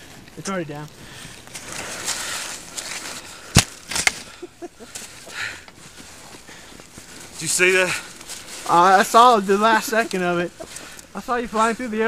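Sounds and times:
person laughing: 0:04.2 - 0:05.4, 0:09.5 - 0:10.8
skis hissing through powder snow: 0:07.4 - 0:12.0.

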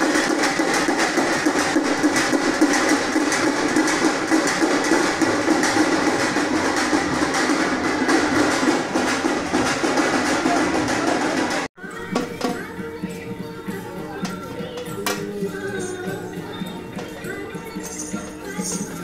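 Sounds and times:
fast continuous drumming: 0:00.0 - 0:19.0.

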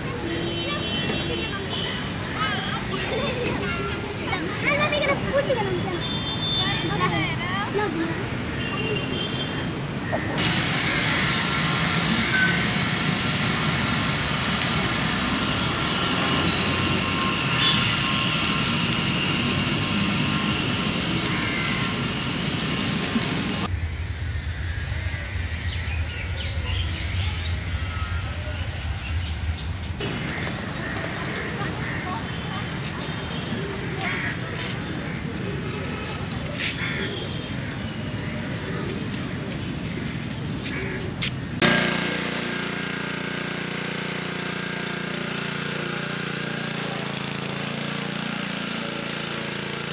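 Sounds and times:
city rumble: 0:00.0 - 0:49.9.

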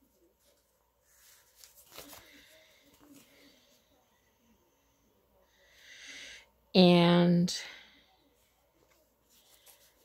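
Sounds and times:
paper sticker sheet rustling: 0:00.0 - 0:03.8, 0:08.8 - 0:10.0
light clicks and crinkles: 0:00.4 - 0:03.6.

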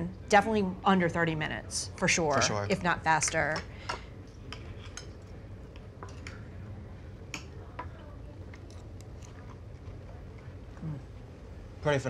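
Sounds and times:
low room hum: 0:00.0 - 0:12.0
chewing: 0:08.5 - 0:10.9.

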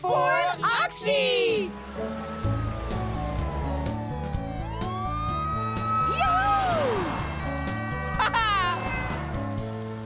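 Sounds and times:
background music: 0:00.0 - 0:10.0
cartoon siren wailing: 0:01.0 - 0:09.1.

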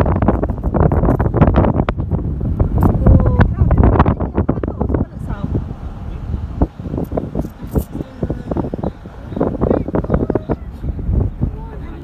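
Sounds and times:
car engine and road rumble: 0:00.0 - 0:12.0
wind buffeting microphone: 0:00.0 - 0:12.0.

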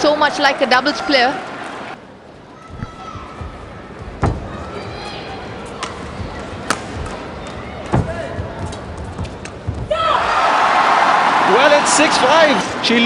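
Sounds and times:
racket striking shuttlecock: 0:06.6 - 0:08.0
crowd cheering and shouting: 0:09.8 - 0:13.0.

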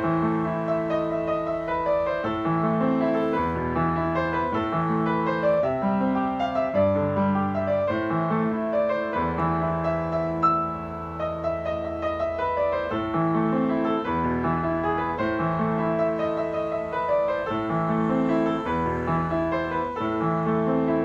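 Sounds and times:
acoustic piano playing: 0:00.0 - 0:21.0.

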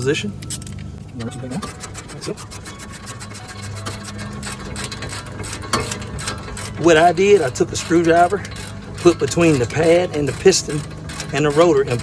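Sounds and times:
ratchet wrench clicking: 0:00.4 - 0:12.0.

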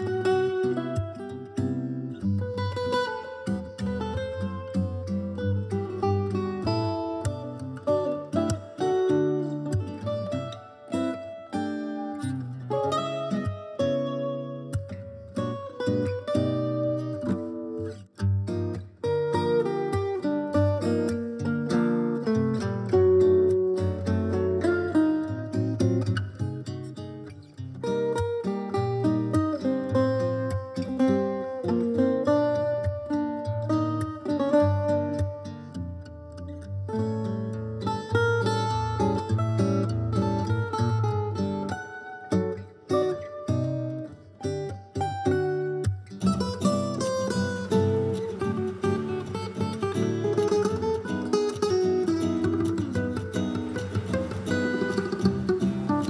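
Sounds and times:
lower guitar accompaniment: 0:00.0 - 0:56.0
plucked guitar melody: 0:00.0 - 0:56.0.

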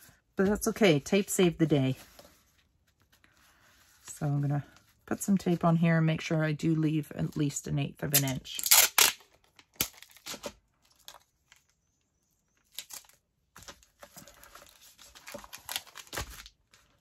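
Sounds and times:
packing tape pulled off roll: 0:08.1 - 0:10.5.

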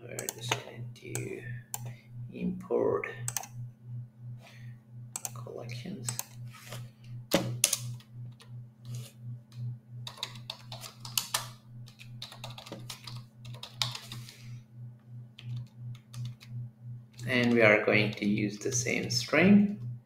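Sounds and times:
keyboard typing clicks: 0:00.2 - 0:01.9, 0:03.3 - 0:03.6, 0:05.1 - 0:05.4, 0:07.3 - 0:08.5, 0:10.0 - 0:14.3, 0:15.4 - 0:16.5.

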